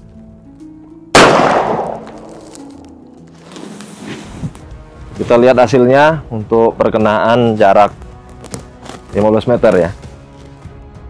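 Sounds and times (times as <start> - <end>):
background music: 0.0 - 11.0
revolver shot: 1.2 - 2.8.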